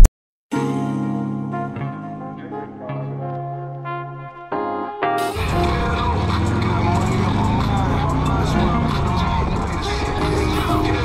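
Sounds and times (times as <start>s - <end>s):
people's voices: 5.3s - 11.0s
vehicle engines running: 5.4s - 11.0s.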